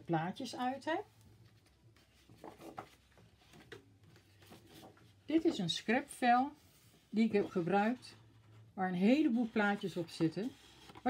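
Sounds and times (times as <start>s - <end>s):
paper and card rustling: 1.2s - 6.0s, 6.8s - 11.0s.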